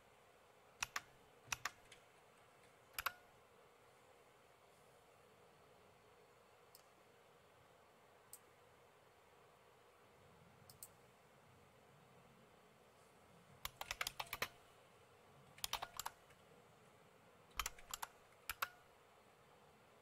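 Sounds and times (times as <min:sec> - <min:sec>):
faint keyboard typing: 0:00.8 - 0:03.4, 0:10.6 - 0:11.1, 0:13.5 - 0:14.7, 0:15.4 - 0:16.6, 0:17.5 - 0:18.9.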